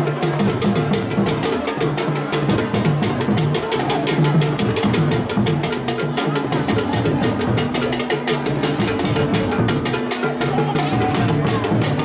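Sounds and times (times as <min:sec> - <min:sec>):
crowd voices: 0:00.0 - 0:12.0
deep drums: 0:00.0 - 0:12.0
fast clicking drum beat: 0:00.0 - 0:12.0.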